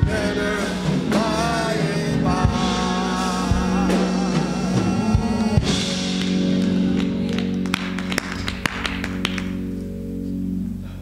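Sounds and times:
held keyboard chord: 0.0 - 11.0.

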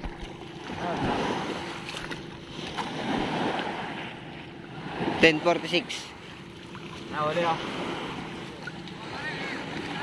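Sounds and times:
water sloshing at shore: 0.0 - 10.0.

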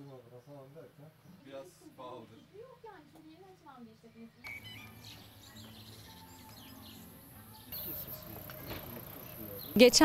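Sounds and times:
small birds chirping: 0.0 - 10.0
steady high-pitched hiss: 7.2 - 10.0.

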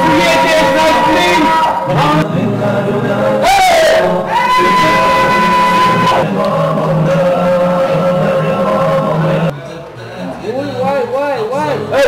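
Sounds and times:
people wailing: 0.0 - 9.5
low voices: 0.0 - 12.0.

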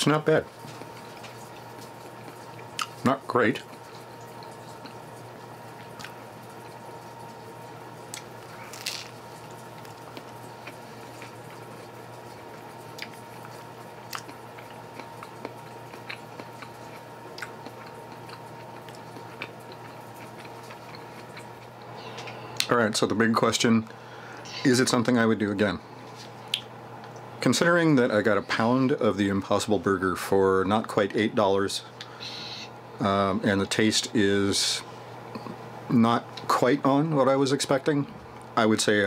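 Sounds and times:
low background hum: 0.0 - 39.0
person chewing wet mouth smacks: 14.1 - 21.9.

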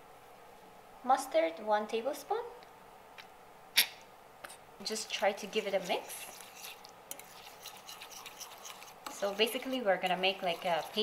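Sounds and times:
spoon scraping in bowl: 4.8 - 11.0.

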